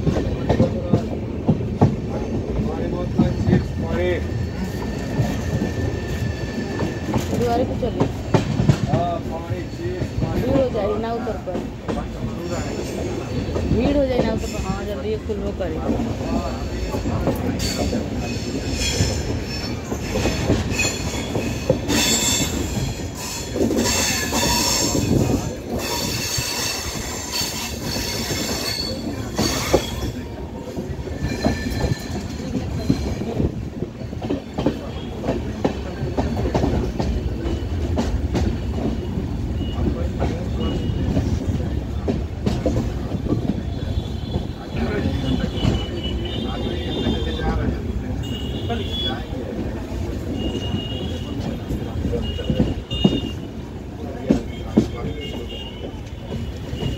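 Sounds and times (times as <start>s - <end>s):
train wheels rumbling on rail: 0.0s - 56.9s
high wheel squeal: 25.8s - 30.2s.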